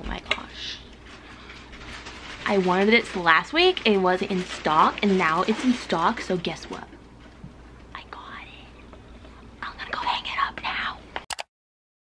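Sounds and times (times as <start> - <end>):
woman whispering: 7.9 - 8.8, 9.6 - 11.1.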